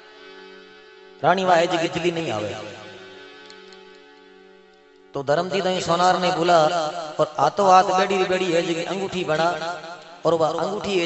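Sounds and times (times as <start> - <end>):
soft held instrumental chord: 0.0 - 11.0.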